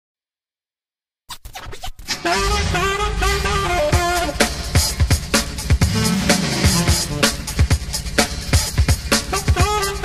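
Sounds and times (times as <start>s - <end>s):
record scratch bursts: 1.3s - 2.2s
disco track: 2.2s - 10.0s.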